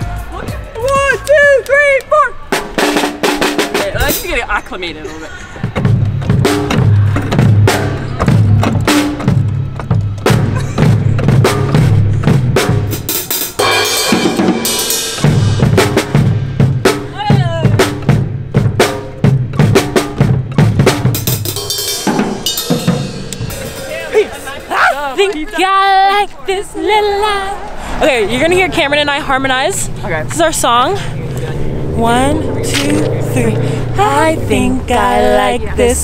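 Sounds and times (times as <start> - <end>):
drum kit beat: 0.0 - 4.7, 5.6 - 25.8.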